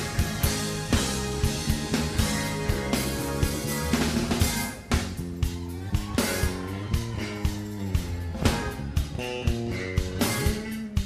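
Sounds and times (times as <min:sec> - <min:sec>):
electric bass notes: 0:00.0 - 0:11.0
steady drum beat: 0:00.0 - 0:11.0.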